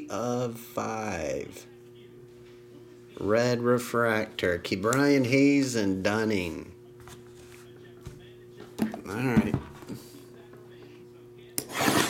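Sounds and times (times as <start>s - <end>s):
faint steady hum: 0.0s - 11.7s.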